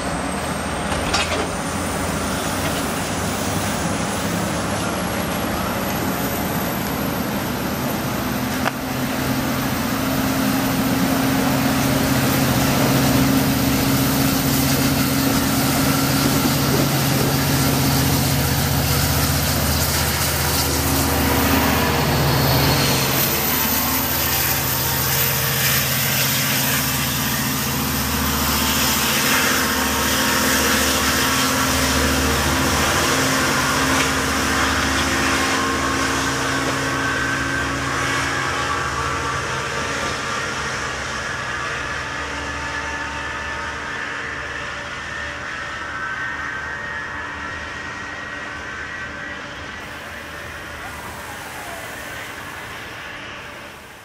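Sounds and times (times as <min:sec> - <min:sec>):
diesel locomotive engine: 0:00.0 - 0:54.0
train cars rumbling on rails: 0:00.0 - 0:54.0.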